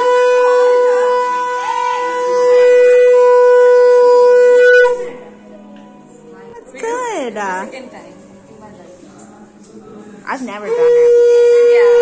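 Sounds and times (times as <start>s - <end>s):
conch shell blown: 0.0s - 5.5s, 10.7s - 12.0s.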